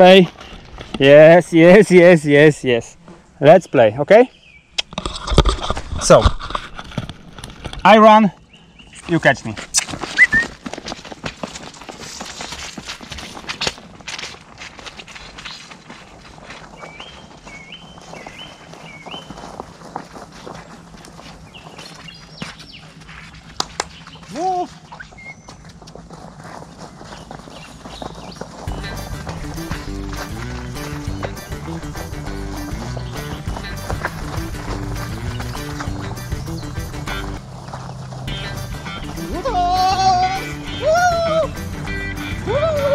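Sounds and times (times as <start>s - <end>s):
music with a steady beat: 28.7s - 37.4s, 38.3s - 42.9s.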